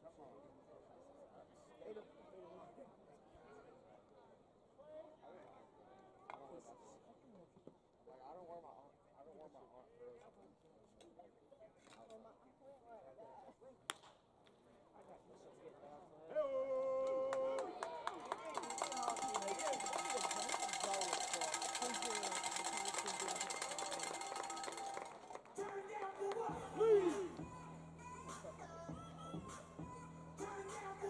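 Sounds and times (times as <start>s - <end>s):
crowd murmur: 17.6s - 27.5s
public address music: 18.4s - 31.0s.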